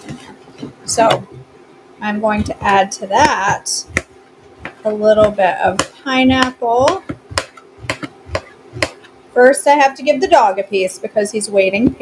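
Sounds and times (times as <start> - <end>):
knife chopping fruit: 2.1 - 9.2.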